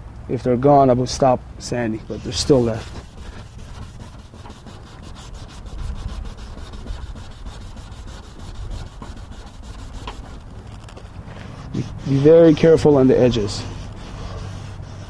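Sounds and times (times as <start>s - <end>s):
sandpaper rubbing on plastic: 2.0s - 15.0s.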